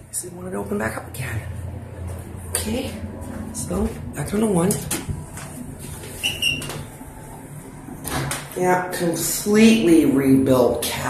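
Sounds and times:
low rumble inside elevator: 0.0 - 11.0.

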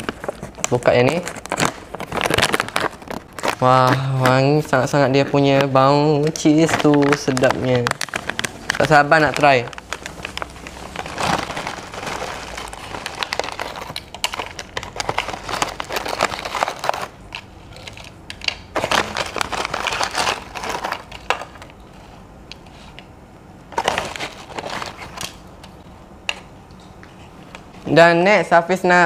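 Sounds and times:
plastic bag rustling: 0.0 - 22.2, 23.7 - 25.4.

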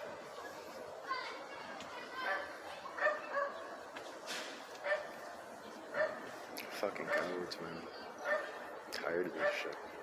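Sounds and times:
dog yipping: 2.2 - 3.6, 8.2 - 8.6.

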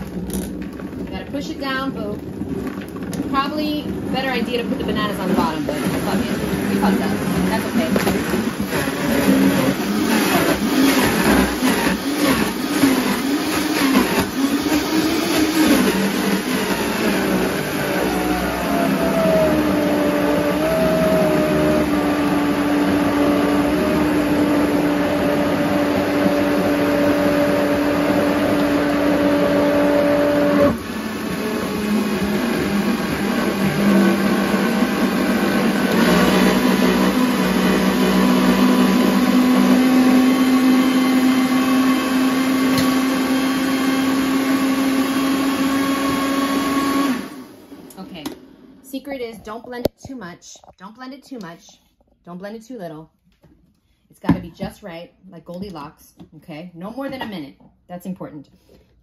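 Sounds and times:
blender motor whine: 0.0 - 48.4.

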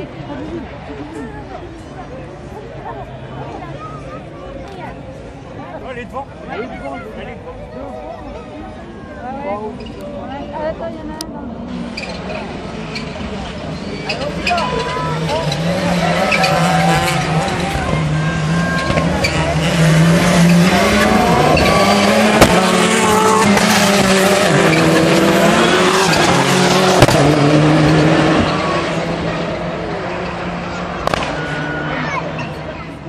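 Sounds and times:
race car engines revving: 0.0 - 33.0
tyre noise on track: 11.1 - 33.0.

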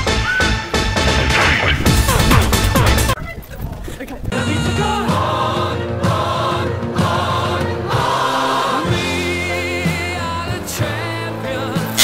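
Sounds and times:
song with singing voices: 4.3 - 12.0.

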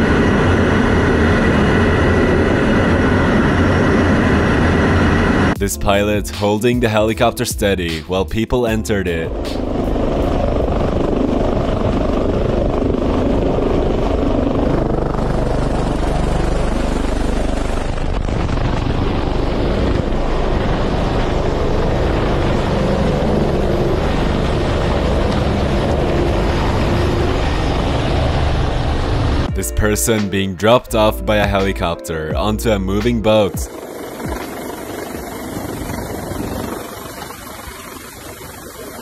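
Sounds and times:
helicopter hovering: 0.0 - 39.0.

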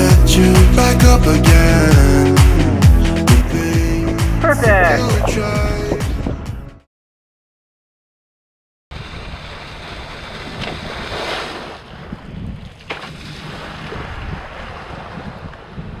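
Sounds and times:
wind buffeting microphone: 5.0 - 6.7, 11.8 - 16.0
waves and water hiss: 9.0 - 11.8.

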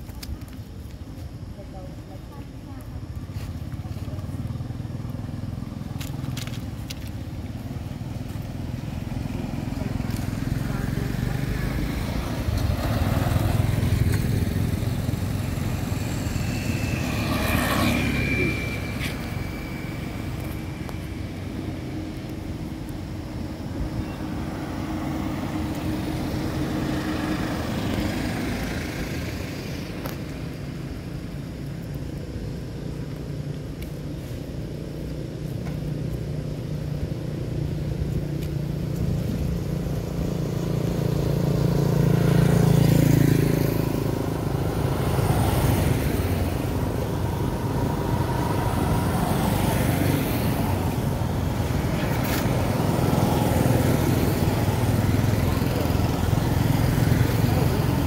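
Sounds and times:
vehicles passing on road: 0.0 - 58.0.

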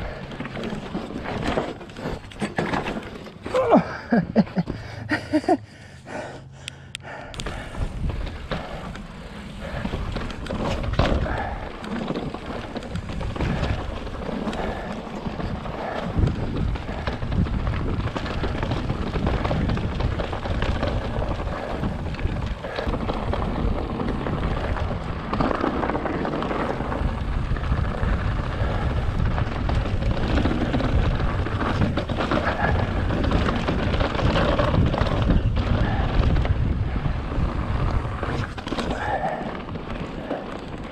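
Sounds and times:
wind rumbling on microphone: 0.0 - 2.4, 7.0 - 40.9
bike rattling over stones: 0.0 - 5.6, 7.4 - 40.9
bike tyres crunching on rocks: 7.4 - 40.9.

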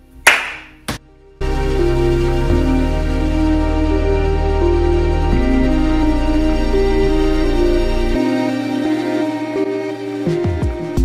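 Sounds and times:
music: 0.0 - 11.0
hands slapping in a high-five: 0.3 - 1.0.

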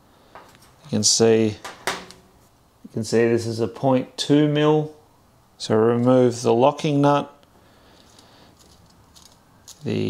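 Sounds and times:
faint clicks of small metal parts: 7.4 - 10.0.

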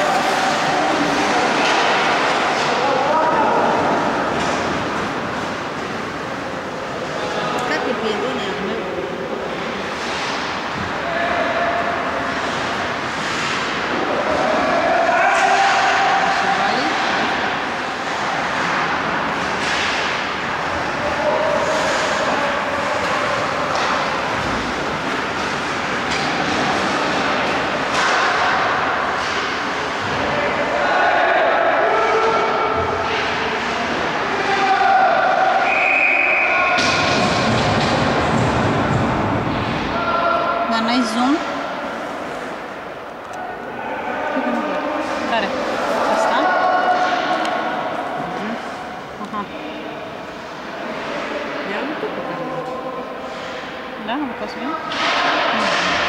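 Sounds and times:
hockey sticks and puck knocking: 0.1 - 2.8, 12.2 - 30.2, 36.8 - 39.9
players shouting: 10.9 - 40.8, 41.4 - 53.9.

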